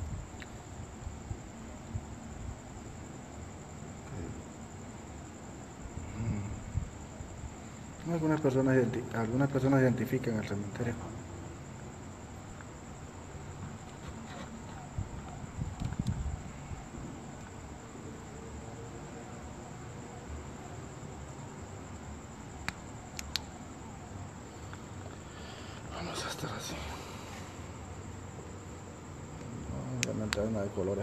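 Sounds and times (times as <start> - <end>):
crickets trilling: 0.0 - 31.0
soft outdoor hiss: 0.0 - 31.0
sharp clicks: 15.3 - 16.2, 22.6 - 23.5, 30.0 - 30.5.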